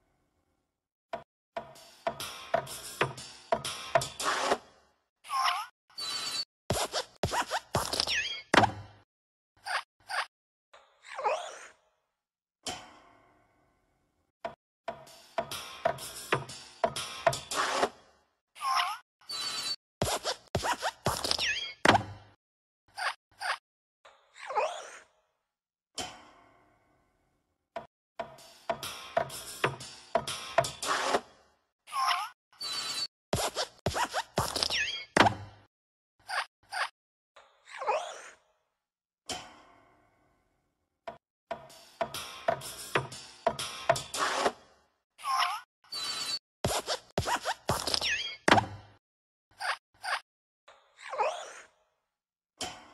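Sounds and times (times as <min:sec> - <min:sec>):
creaky squeaky spring bursts: 0:05.9 - 0:08.6, 0:19.2 - 0:21.9, 0:32.2 - 0:35.4, 0:45.4 - 0:48.6.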